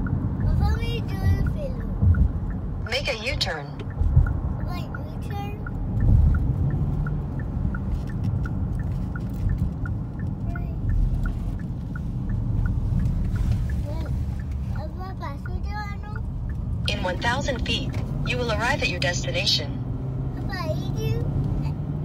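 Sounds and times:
car road and engine rumble: 0.0s - 22.0s
turn signal ticking: 0.0s - 22.0s.

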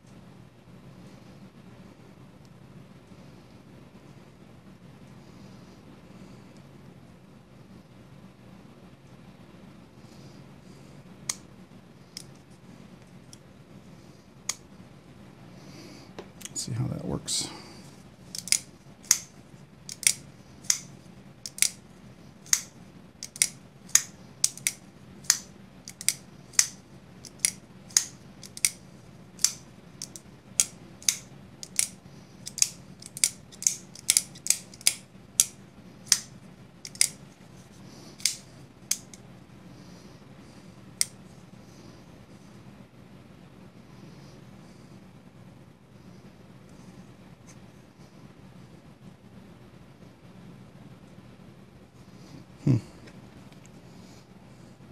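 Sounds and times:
folding knife blade clicking: 18.3s - 19.3s, 19.9s - 20.9s, 21.5s - 21.8s, 22.5s - 28.8s, 29.4s - 35.5s, 36.1s - 37.2s, 38.2s - 39.2s.

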